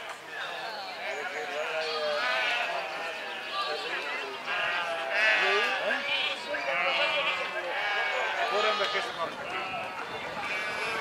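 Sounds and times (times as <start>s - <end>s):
sheep bleating: 1.0s - 11.0s.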